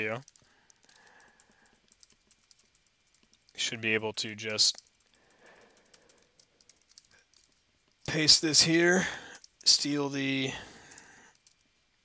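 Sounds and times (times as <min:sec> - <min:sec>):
keyboard typing: 0:00.0 - 0:11.7.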